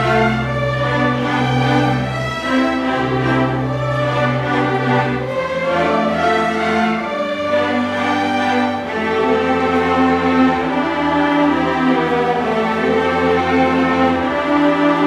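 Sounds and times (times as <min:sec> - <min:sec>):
string orchestra sustained chords: 0:00.0 - 0:15.0.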